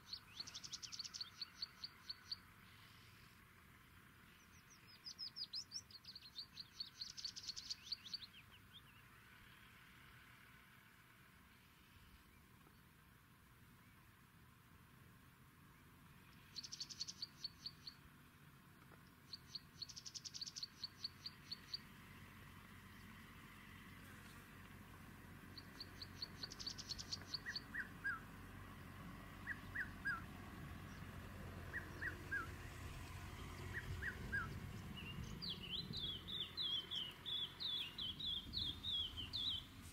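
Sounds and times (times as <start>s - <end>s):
low background noise: 0.0s - 39.9s.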